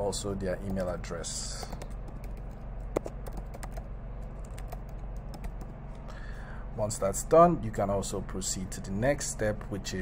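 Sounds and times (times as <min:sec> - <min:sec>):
steady low hum: 0:00.0 - 0:10.0
typing on a keyboard: 0:01.6 - 0:05.7.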